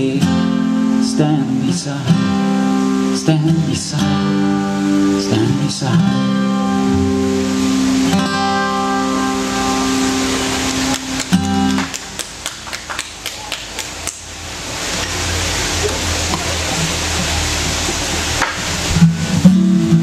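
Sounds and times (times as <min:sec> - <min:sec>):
acoustic guitar: 0:00.0 - 0:13.2, 0:14.0 - 0:20.0.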